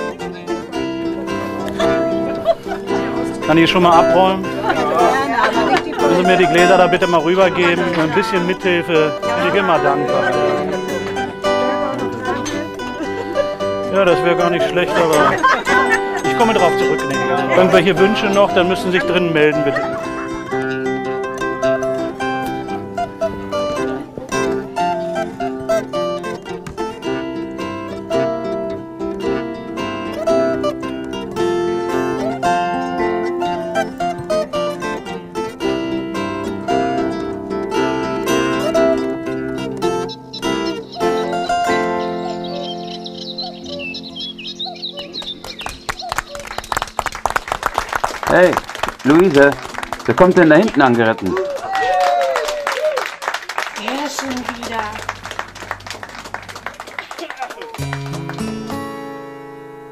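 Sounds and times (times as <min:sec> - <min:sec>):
zither plucked melody: 0:00.0 - 0:46.1.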